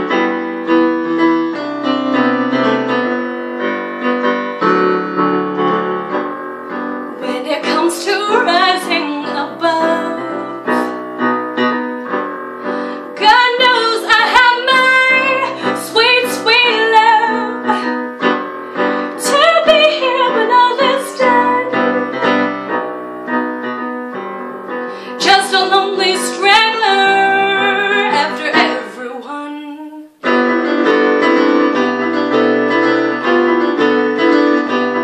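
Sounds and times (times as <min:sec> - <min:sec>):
woman singing: 0:07.2 - 0:11.0, 0:13.1 - 0:18.2, 0:19.1 - 0:22.1, 0:25.1 - 0:30.3.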